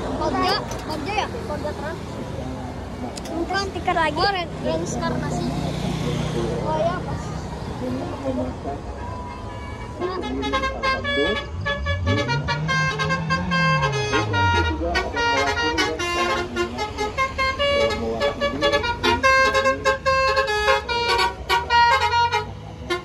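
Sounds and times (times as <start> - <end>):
bus horns playing quick tunes: 9.4 - 23.0.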